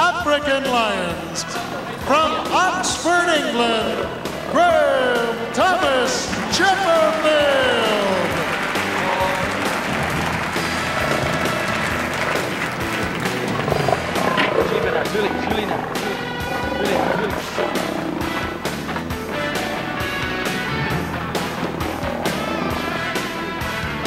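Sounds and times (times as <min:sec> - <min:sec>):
circus band music: 0:00.0 - 0:24.0
voices: 0:00.0 - 0:24.0.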